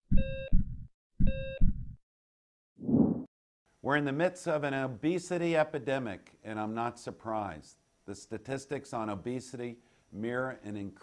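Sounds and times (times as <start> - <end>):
heart monitor beep: 0.1 - 2.0
heartbeat thumps: 0.1 - 2.0.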